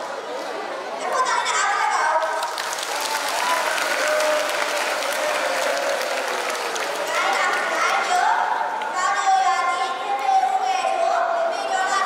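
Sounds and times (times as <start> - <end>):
children clapping: 2.2 - 8.2.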